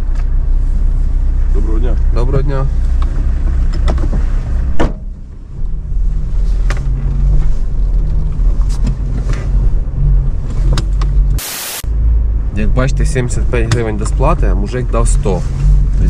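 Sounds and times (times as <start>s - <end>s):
car engine and road noise: 0.0s - 16.0s
car door shutting: 3.7s - 5.1s.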